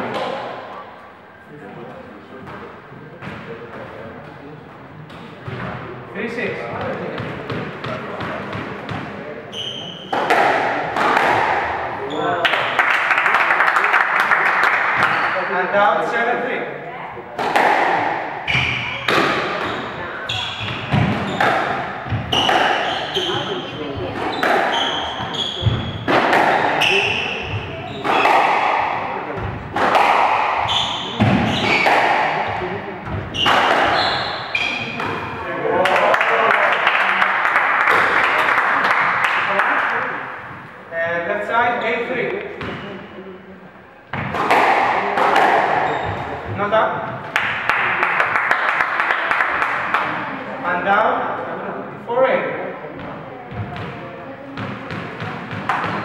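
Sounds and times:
spectators talking: 0:00.0 - 0:56.0
squash ball hits: 0:06.8 - 0:12.7, 0:17.4 - 0:35.4, 0:44.1 - 0:47.7, 0:54.6 - 0:56.0
shoes squeaking on wooden floor: 0:09.5 - 0:10.2, 0:18.5 - 0:28.4, 0:29.4 - 0:35.5, 0:45.7 - 0:46.5
spectators clapping: 0:12.4 - 0:15.2, 0:35.8 - 0:40.1, 0:47.3 - 0:50.1.

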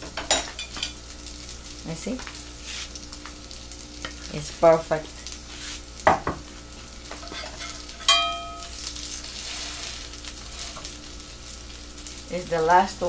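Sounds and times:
food sizzling in oil: 0:00.0 - 0:13.0
spatula knocking pan: 0:07.2 - 0:08.7
metallic spatula clink: 0:07.2 - 0:08.8.

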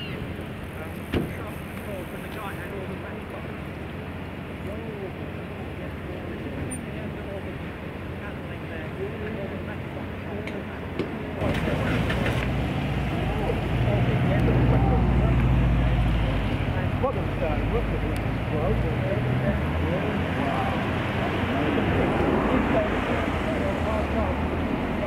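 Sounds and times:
people talking: 0:00.0 - 0:03.7, 0:04.6 - 0:25.0
heavy engine droning: 0:11.4 - 0:25.0.

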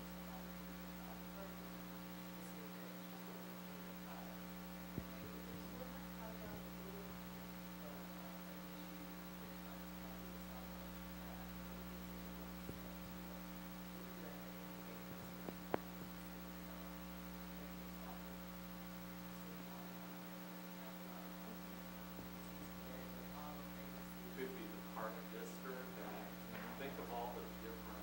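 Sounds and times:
electrical mains hum: 0:00.0 - 0:28.0.

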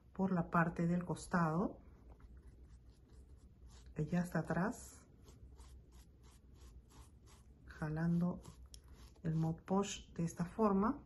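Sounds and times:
scratchy paintbrush strokes: 0:01.8 - 0:10.0.

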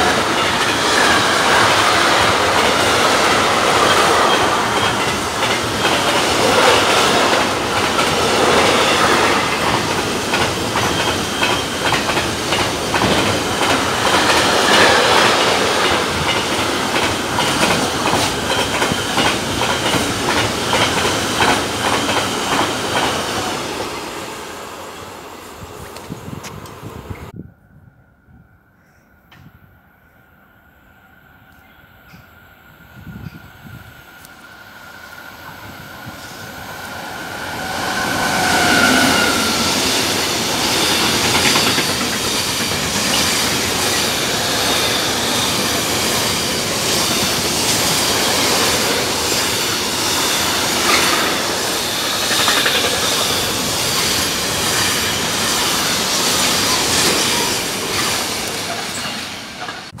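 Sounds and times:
freight train rumble: 0:00.0 - 0:28.0, 0:31.3 - 1:00.0.

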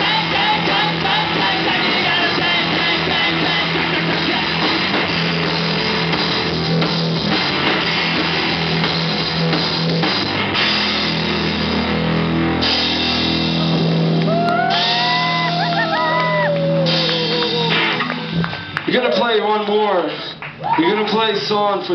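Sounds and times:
drum kit with cymbals: 0:00.0 - 0:18.8
electric guitar: 0:00.0 - 0:18.9.

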